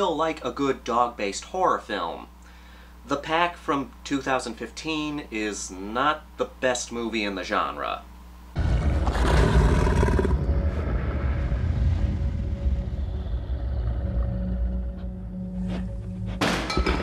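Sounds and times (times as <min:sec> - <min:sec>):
low rumbling drone: 0:08.6 - 0:16.5.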